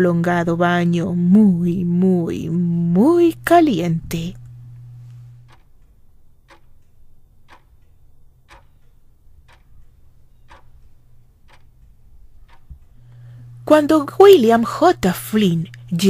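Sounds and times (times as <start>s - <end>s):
low hum: 0.0s - 16.0s
clock ticking: 0.4s - 16.0s.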